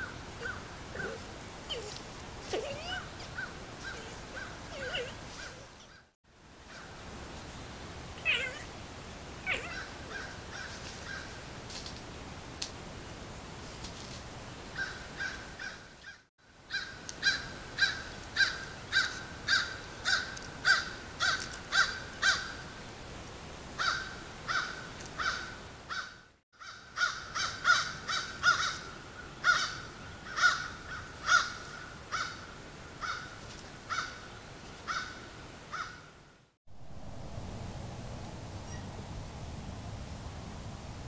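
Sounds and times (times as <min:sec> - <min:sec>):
foxes barking: 0:00.0 - 0:06.1, 0:08.2 - 0:08.7, 0:09.4 - 0:11.3, 0:23.8 - 0:32.4, 0:33.9 - 0:34.2.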